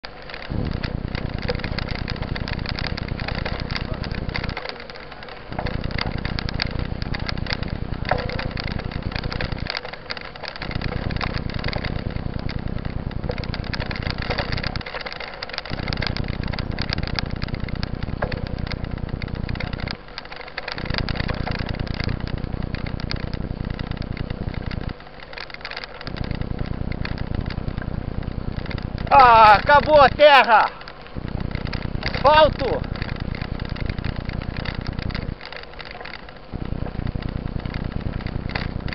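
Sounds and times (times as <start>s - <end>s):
crackling and rattling: 0.0s - 38.9s
road rumble: 0.0s - 38.9s
wind buffeting microphone: 0.4s - 20.1s, 31.0s - 35.5s.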